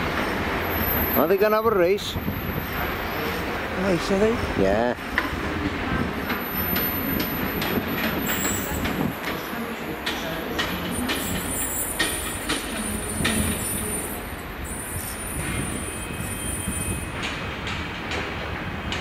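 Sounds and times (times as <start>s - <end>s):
train running slowly: 0.0s - 19.0s
high wheel squeal: 10.9s - 17.2s.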